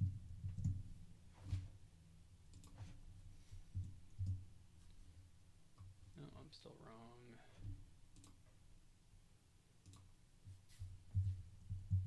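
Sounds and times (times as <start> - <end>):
keyboard and mouse clicks: 0.4 - 0.8, 2.5 - 3.0, 3.8 - 4.4, 8.2 - 8.5, 9.8 - 10.1.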